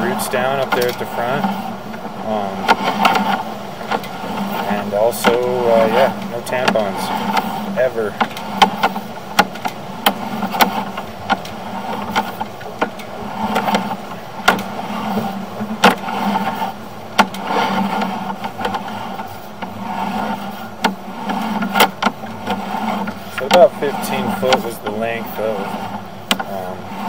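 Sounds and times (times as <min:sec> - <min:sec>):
cable clicking and knocking: 0:00.0 - 0:27.0
steady low hum: 0:00.0 - 0:27.0.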